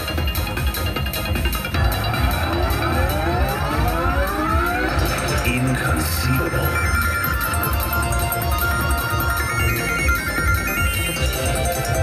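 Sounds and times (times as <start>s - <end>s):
pulsing bass beat: 0.0s - 12.0s
rising pitch sweep: 1.8s - 5.5s.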